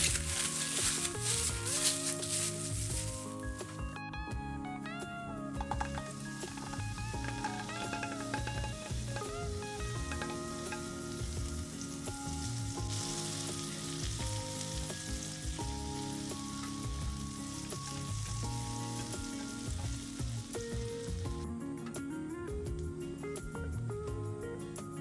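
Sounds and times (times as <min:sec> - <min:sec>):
background music: 0:00.0 - 0:25.0
butter sizzling in a frying pan: 0:05.6 - 0:21.4.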